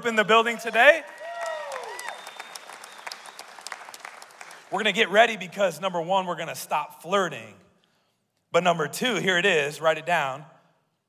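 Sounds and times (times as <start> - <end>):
congregation applauding: 0.3 - 5.3.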